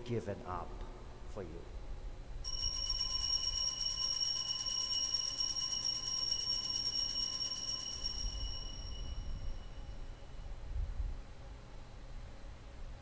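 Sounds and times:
altar bells ringing: 2.5s - 10.2s.

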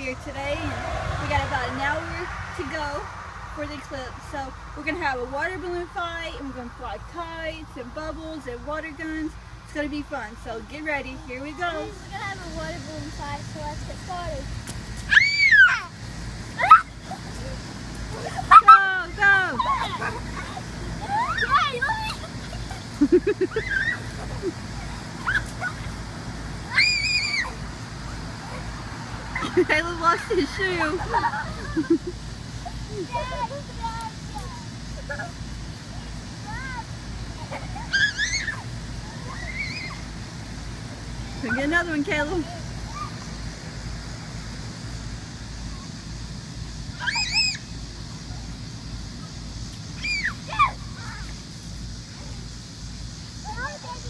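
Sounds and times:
steady low rumble: 0.0s - 15.1s, 15.8s - 37.9s
children shrieking and squealing: 15.0s - 29.7s, 30.8s - 40.3s, 41.0s - 43.5s, 46.8s - 52.5s.

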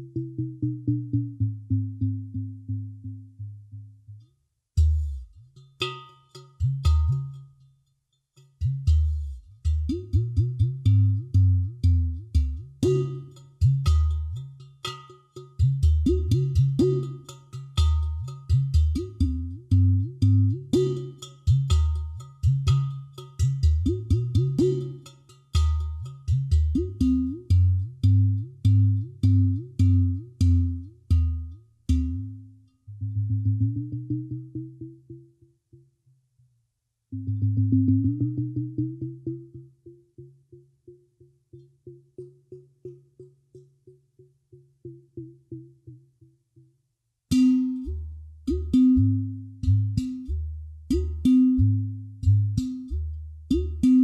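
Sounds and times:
clay pot drum bass tones: 8.6s - 34.8s, 47.3s - 54.0s.

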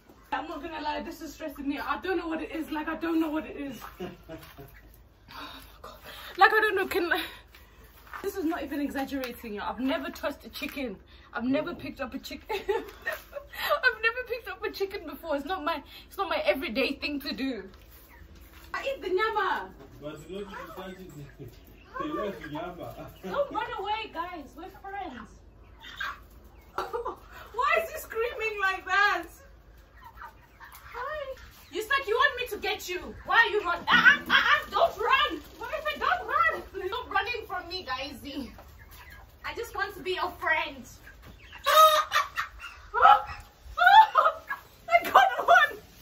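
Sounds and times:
chicken squawking in alarm: 41.5s - 45.8s.

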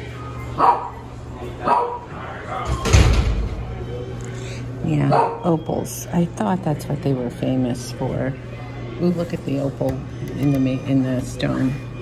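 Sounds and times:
dog barking: 0.6s - 1.0s, 1.6s - 2.1s, 5.0s - 5.5s.

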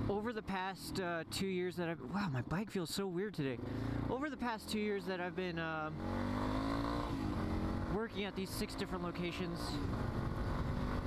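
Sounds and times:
motorcycle engine running: 3.5s - 11.0s.

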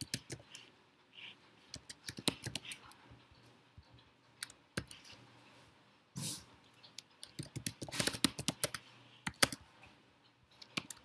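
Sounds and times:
typing on computer keyboard: 0.0s - 0.7s, 1.7s - 2.9s, 7.0s - 9.6s, 10.5s - 11.0s.

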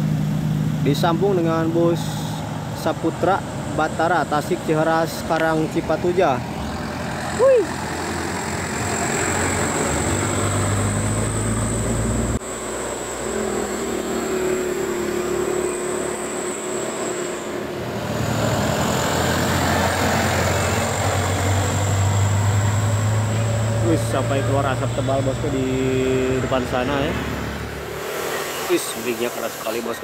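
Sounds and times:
bus diesel engine passing: 0.0s - 30.0s
truck diesel engine labouring: 0.0s - 30.0s.

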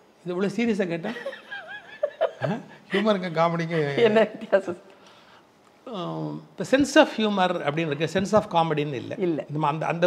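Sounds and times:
woman laughing: 1.1s - 3.2s.

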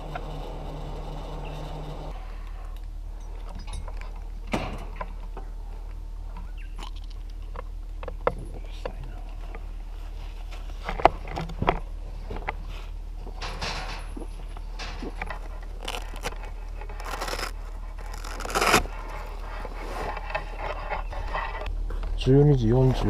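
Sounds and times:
nylon fabric rustling: 15.4s - 20.2s.

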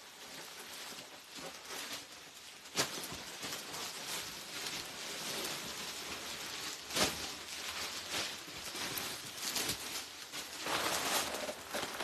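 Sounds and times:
plastic packaging crinkling: 0.0s - 12.0s.

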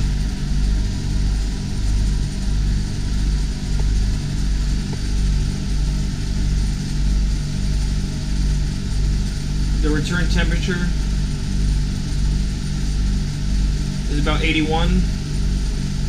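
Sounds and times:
air conditioner throbbing hum: 0.0s - 16.0s
blower air noise: 0.0s - 16.0s.

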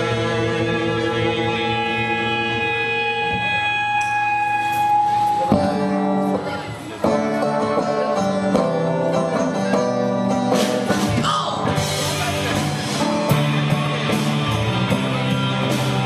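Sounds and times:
ringing guitar chords: 0.0s - 16.0s
rock band playing live: 0.0s - 16.0s.

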